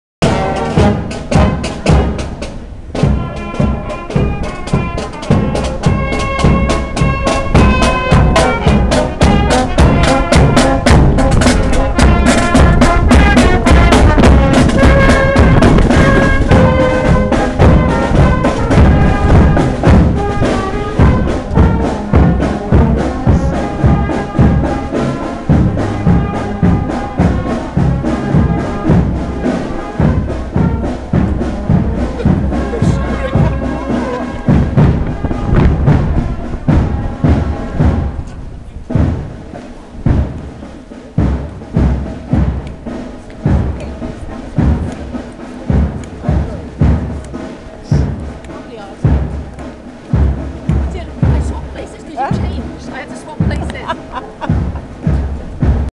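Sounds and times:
marching brass band: 0.2s - 55.9s
steady drum beat: 0.2s - 55.9s.

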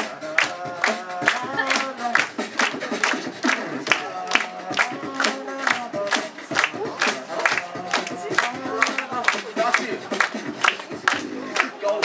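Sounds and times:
beatboxing snare-like hits: 0.0s - 12.0s.

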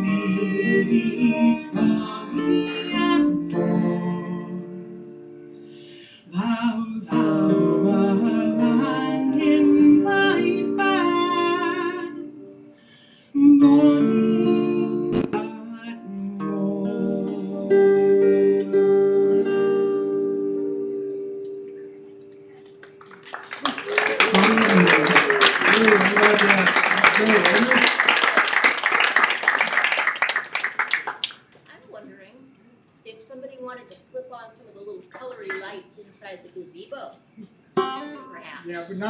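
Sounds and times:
acoustic guitar and fiddle: 0.0s - 22.2s, 37.8s - 39.0s
audience applause: 22.8s - 31.5s
voices calling out: 23.6s - 28.6s.

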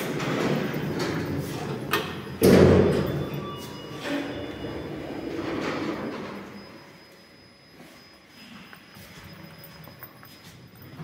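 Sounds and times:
elevator machinery rattling: 0.0s - 6.9s.

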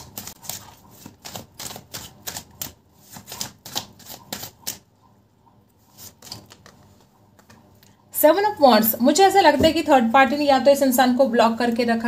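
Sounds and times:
cards being shuffled by hand: 0.0s - 4.8s, 5.9s - 7.6s.

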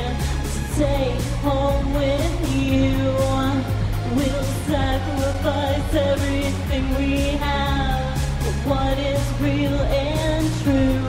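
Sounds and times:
electronic backing track with beat: 0.0s - 11.0s
woman singing: 0.0s - 11.0s.

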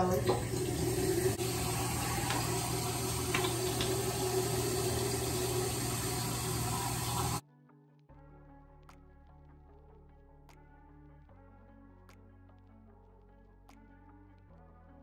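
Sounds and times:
tap running into sink: 0.0s - 7.4s.

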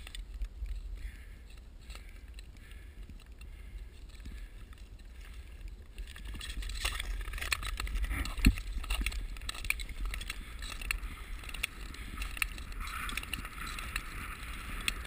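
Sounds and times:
wind rumble on microphone: 4.3s - 15.0s
ice skates scraping on ice: 12.6s - 15.0s.

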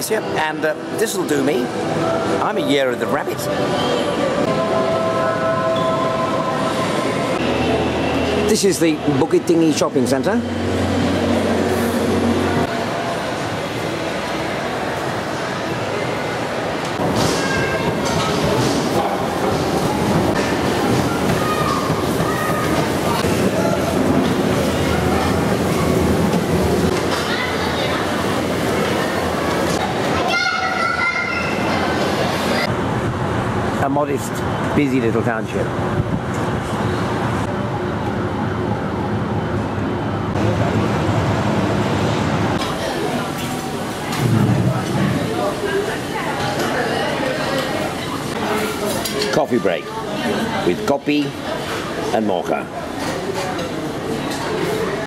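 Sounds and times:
hum of a busy hall: 0.0s - 55.0s.

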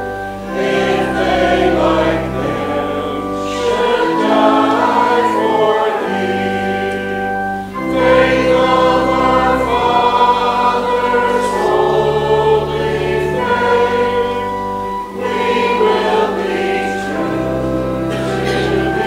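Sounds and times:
congregation singing a hymn: 0.0s - 19.0s
sustained accompanying chords: 0.0s - 19.0s.

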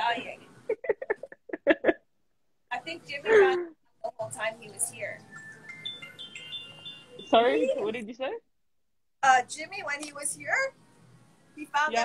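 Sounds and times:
high ringing chime notes: 4.8s - 7.9s.

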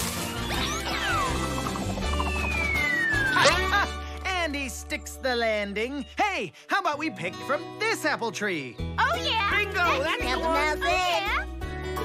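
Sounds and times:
background music: 0.0s - 12.0s
falling slide-whistle tone: 0.5s - 3.5s
cartoon character crying out: 3.1s - 4.0s.

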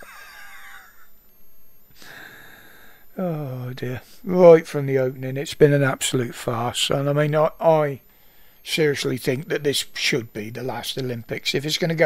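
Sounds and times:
man laughing quietly: 0.0s - 1.2s.

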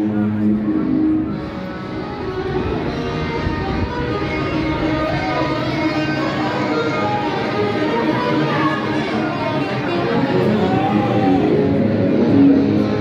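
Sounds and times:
street musicians playing strings: 0.0s - 13.0s.

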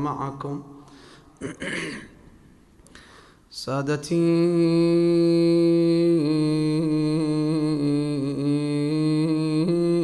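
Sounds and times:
man clearing throat: 1.4s - 2.3s.

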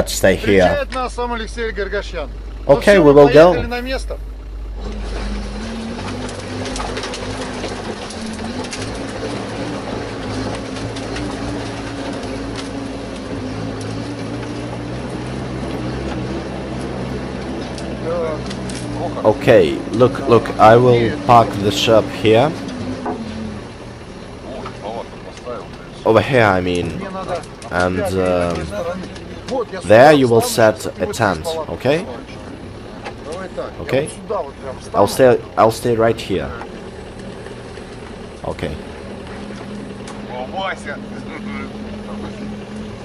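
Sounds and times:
vehicle engine running at low revs: 0.0s - 43.0s
faint voices talking: 38.4s - 43.0s.

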